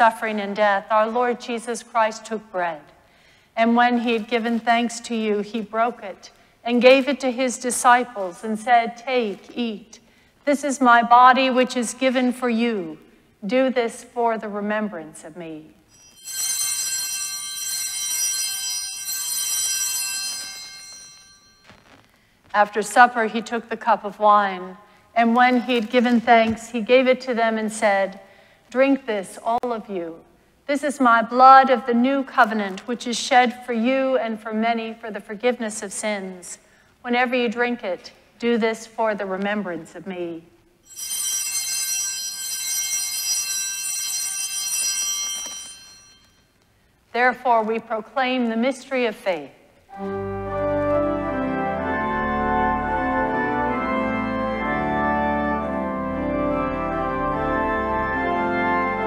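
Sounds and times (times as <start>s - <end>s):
small altar bells ringing: 15.9s - 21.7s, 40.8s - 46.5s.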